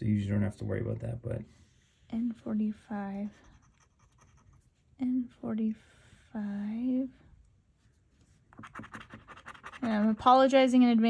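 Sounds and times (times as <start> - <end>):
coin scratching lottery ticket: 8.6 - 10.3.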